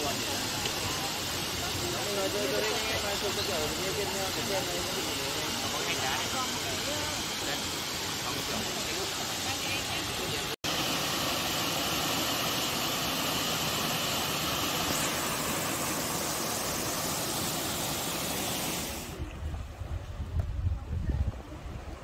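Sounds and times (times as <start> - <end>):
waterfall rushing water: 0.0 - 19.3
wind buffeting microphone: 19.1 - 22.0.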